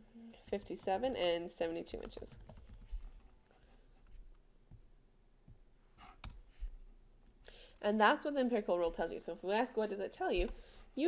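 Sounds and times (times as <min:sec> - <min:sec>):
person speaking: 0:00.2 - 0:02.5, 0:07.8 - 0:11.0
breath: 0:07.4 - 0:07.8, 0:10.6 - 0:11.0.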